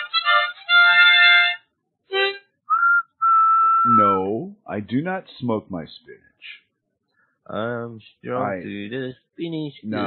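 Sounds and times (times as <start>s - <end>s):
high whistle toots: 2.7s - 4.2s.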